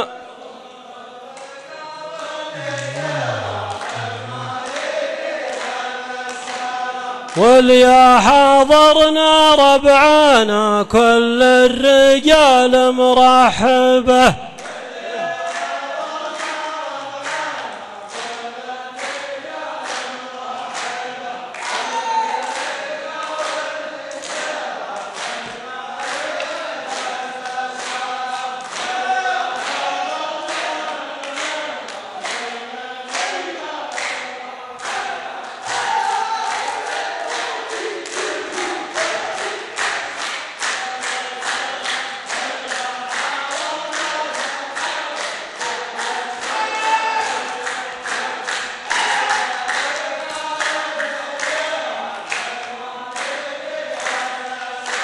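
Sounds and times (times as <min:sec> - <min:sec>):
men chanting in unison: 0:00.0 - 0:55.0
hand claps: 0:01.3 - 0:01.6, 0:02.2 - 0:07.5, 0:14.5 - 0:55.0.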